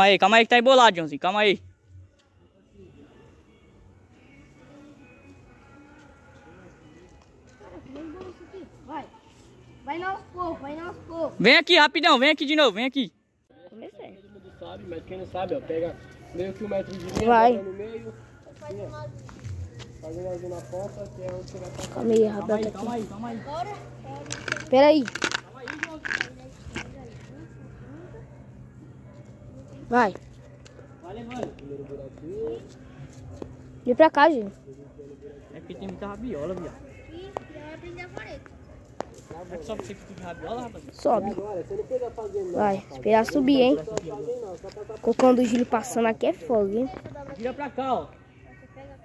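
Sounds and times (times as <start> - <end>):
faint voices talking: 13.3 - 49.0.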